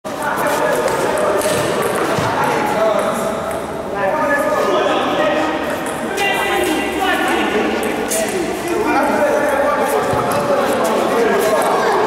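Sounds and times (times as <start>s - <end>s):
voices talking in echoing hall: 0.0s - 12.0s.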